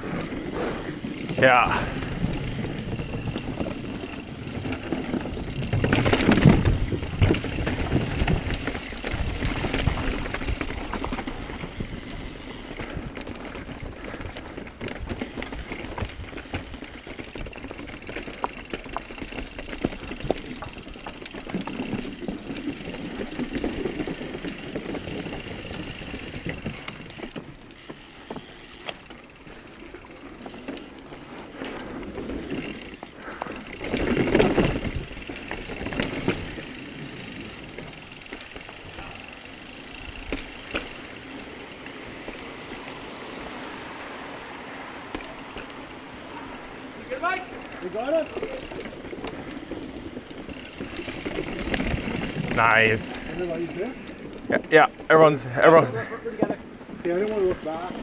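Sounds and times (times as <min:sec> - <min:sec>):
bike chain and frame rattling: 0:00.0 - 0:58.0
bike tyres on dirt and rock: 0:00.0 - 0:58.0.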